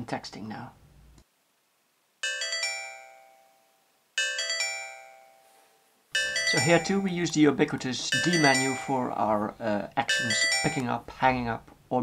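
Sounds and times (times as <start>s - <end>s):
bell-like phone ringtone: 2.2s - 11.1s.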